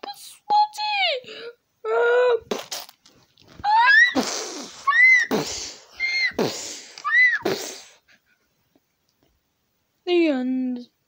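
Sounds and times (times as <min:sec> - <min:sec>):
high voice squealing: 0:03.6 - 0:07.6.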